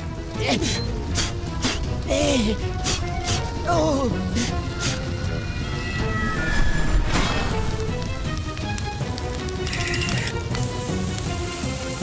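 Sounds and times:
cartoon background music: 0.0s - 12.0s
whooshing effects: 4.9s - 8.1s
fire hose spraying water: 7.3s - 12.0s.

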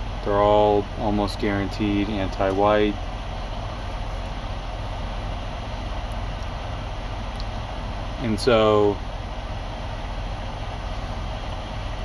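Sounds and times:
vehicle idling inside cab: 0.0s - 12.0s.

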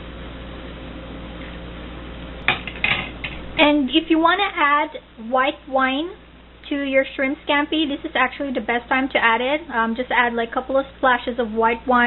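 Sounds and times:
low background hiss: 1.8s - 12.0s.

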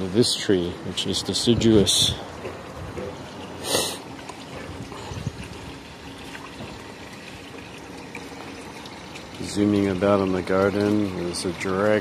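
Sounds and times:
water trickling: 0.0s - 12.0s.

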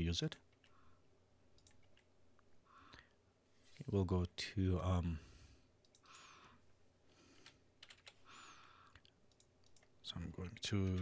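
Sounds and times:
keyboard typing: 1.6s - 2.1s, 7.4s - 8.3s, 8.9s - 11.0s.

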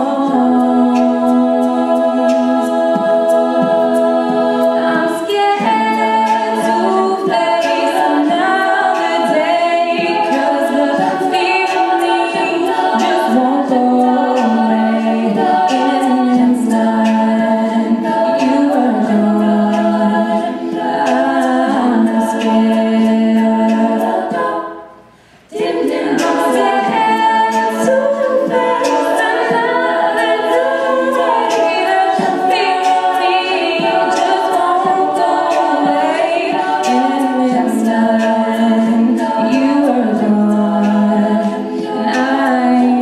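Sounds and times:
backing vocal harmonies: 0.0s - 43.0s
vocal percussion beat: 0.0s - 43.0s.

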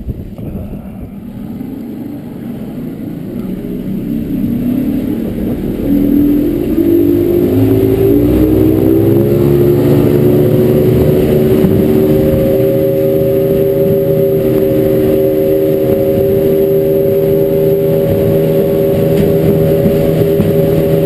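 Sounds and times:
outboard motor accelerating: 0.0s - 21.0s.

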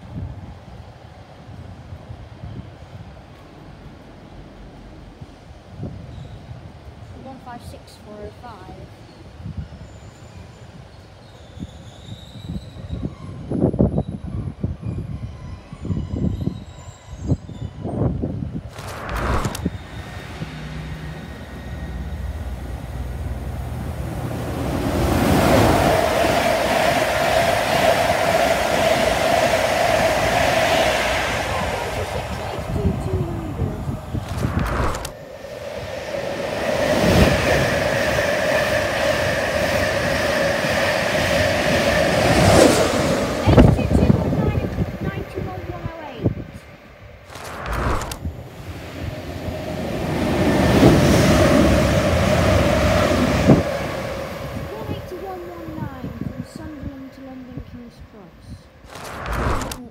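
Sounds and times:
trains passing at speed: 0.0s - 59.9s.

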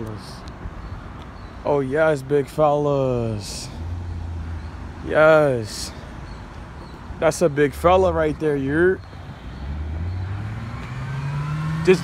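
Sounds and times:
car engine accelerating: 9.4s - 12.0s.

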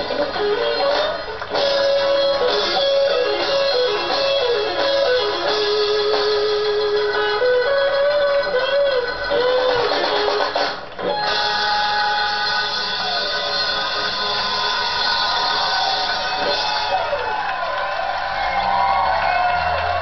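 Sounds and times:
electric blues lead guitar: 0.0s - 17.0s
backing band: 0.0s - 20.0s.

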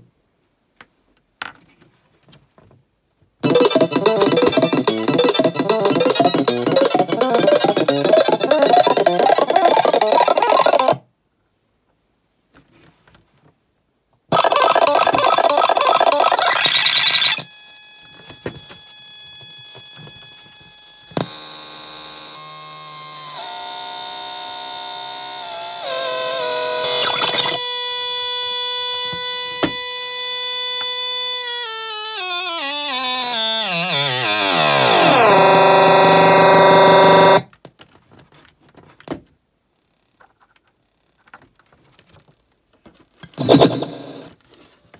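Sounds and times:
downward pitch slide: 3.4s - 11.0s, 32.4s - 37.4s
electronic beats and tones: 3.4s - 11.0s, 14.3s - 17.4s, 26.8s - 27.6s, 33.2s - 37.4s, 43.4s - 44.3s.

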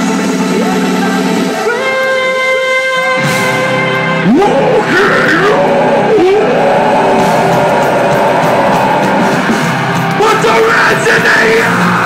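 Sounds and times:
distorted guitars: 0.0s - 12.0s
drums: 0.0s - 12.0s.

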